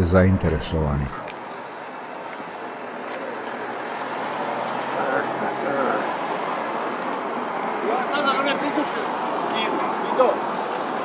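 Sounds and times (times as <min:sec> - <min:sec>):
traffic noise: 0:00.0 - 0:11.0
indistinct voices: 0:04.8 - 0:06.4.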